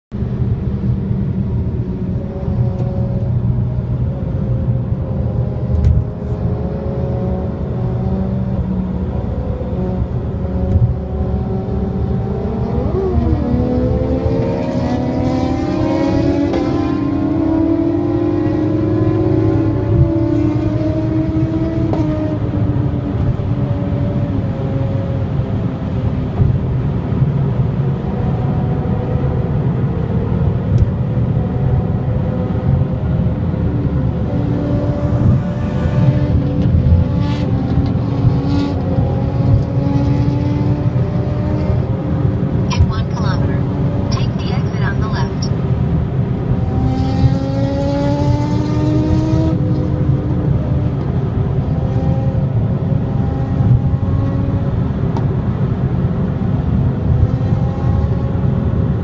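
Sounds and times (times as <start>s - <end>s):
road noise: 0.1s - 59.0s
car engine accelerating: 0.2s - 59.0s.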